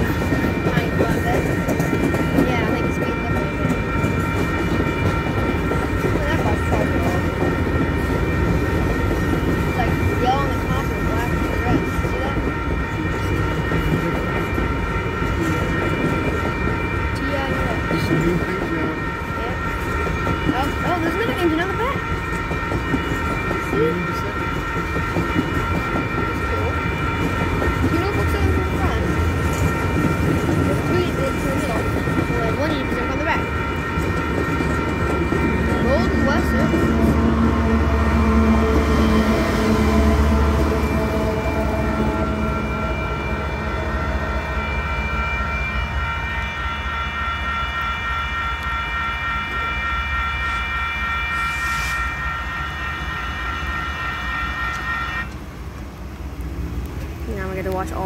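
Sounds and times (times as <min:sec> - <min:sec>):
train wheels clattering on rails: 0:00.0 - 0:43.1
crossing bell ringing: 0:00.0 - 0:55.4
diesel locomotive engine rumble: 0:00.0 - 0:58.0.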